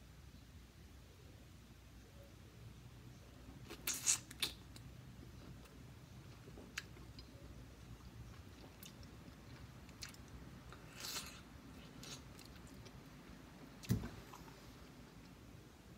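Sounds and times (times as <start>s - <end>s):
chewing pineapple: 3.6s - 13.0s.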